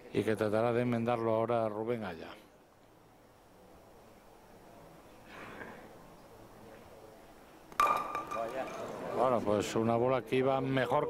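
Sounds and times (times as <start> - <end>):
soft breath: 5.2 - 6.0.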